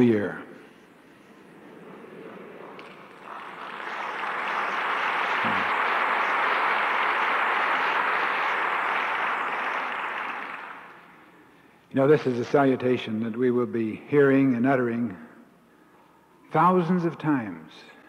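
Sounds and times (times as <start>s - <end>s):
audience applauding: 2.8s - 11.2s.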